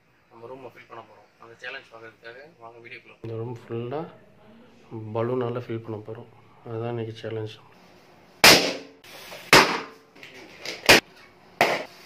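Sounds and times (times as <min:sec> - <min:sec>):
balloons bursting: 0:08.4 - 0:10.0.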